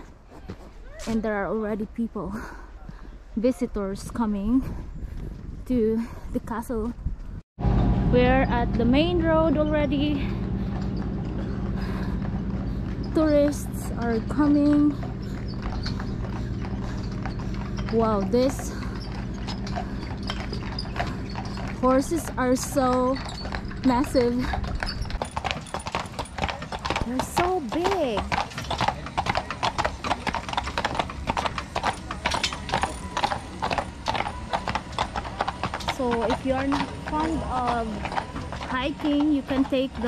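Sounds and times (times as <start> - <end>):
horse hooves clopping on asphalt: 8.5 - 40.0.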